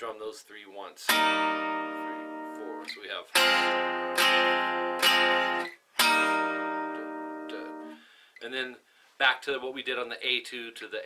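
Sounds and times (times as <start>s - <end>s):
acoustic guitar chord strummed: 1.1s - 8.0s.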